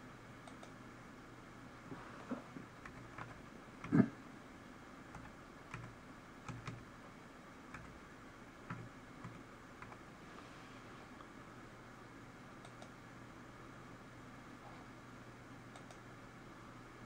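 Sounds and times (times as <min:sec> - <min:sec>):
typing on a computer keyboard: 0:02.8 - 0:04.0, 0:05.1 - 0:06.9, 0:07.7 - 0:08.0, 0:08.6 - 0:10.0.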